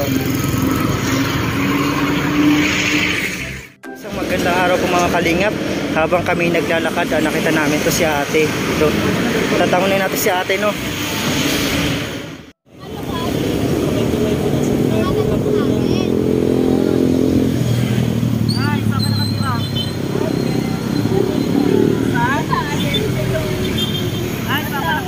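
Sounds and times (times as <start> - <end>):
vehicle engine running: 0.0 - 1.7
people's voices: 12.7 - 17.3, 18.5 - 25.0.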